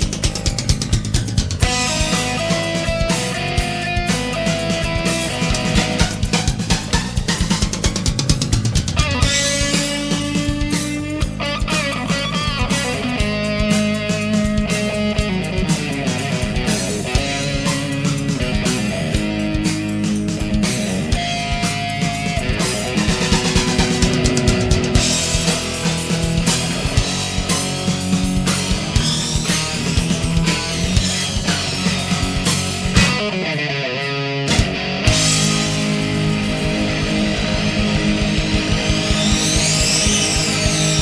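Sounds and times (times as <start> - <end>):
drum kit beat: 0.0 - 41.0
electric guitar: 0.0 - 41.0.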